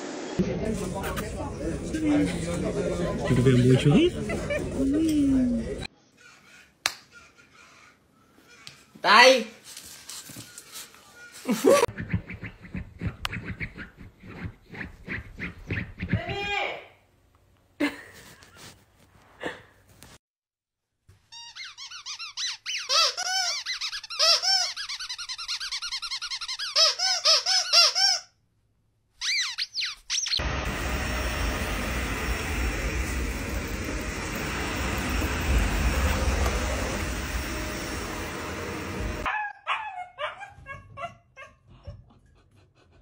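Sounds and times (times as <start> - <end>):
vacuum cleaner running: 0.0 - 5.9, 30.4 - 39.3.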